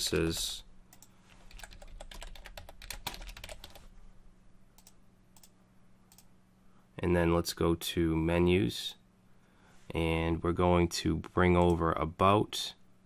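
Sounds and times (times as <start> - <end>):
computer keyboard typing: 0.0 - 3.9.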